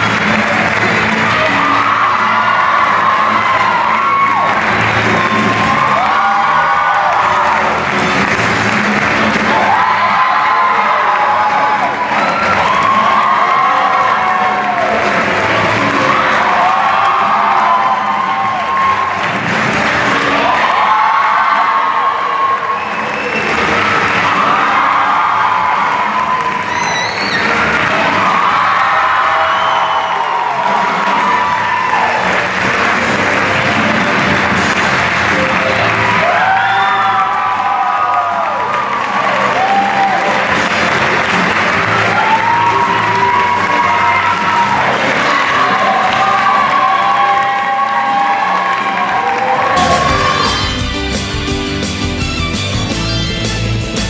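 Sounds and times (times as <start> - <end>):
audience applauding and cheering: 0.0 - 54.0
music: 0.0 - 54.0.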